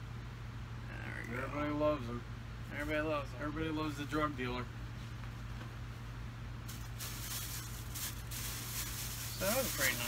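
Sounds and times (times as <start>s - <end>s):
low electrical hum: 0.0s - 10.0s
plastic bag rustling: 6.6s - 10.0s.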